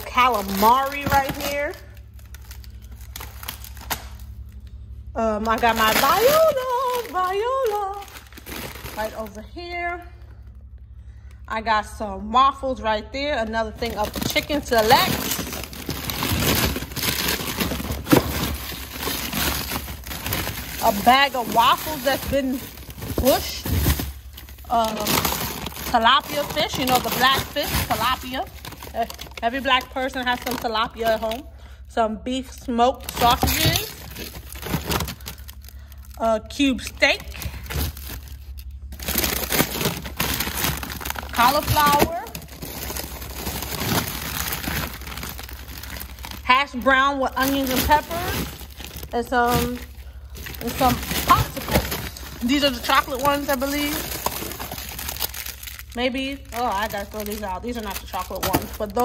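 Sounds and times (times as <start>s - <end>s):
plastic packaging crinkling: 0.0s - 11.4s, 13.3s - 31.8s, 32.4s - 59.0s.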